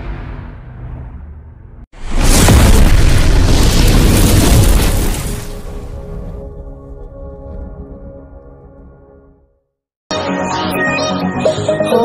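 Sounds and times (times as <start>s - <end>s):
cinematic boom and rumble: 2.0s - 8.4s
music: 6.3s - 12.0s.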